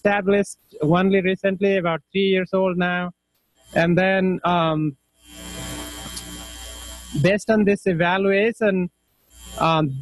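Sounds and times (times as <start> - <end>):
electrical hum with hiss: 0.0 - 10.0.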